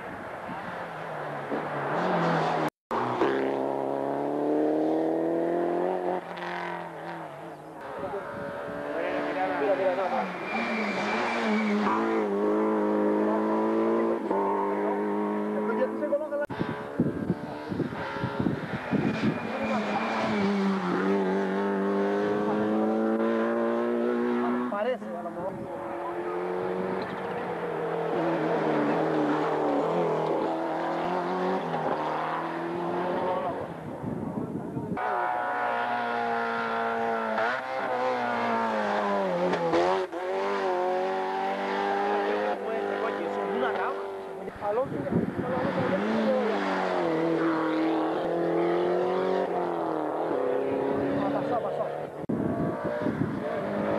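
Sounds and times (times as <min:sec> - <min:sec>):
rally car engines revving: 0:00.0 - 0:53.9.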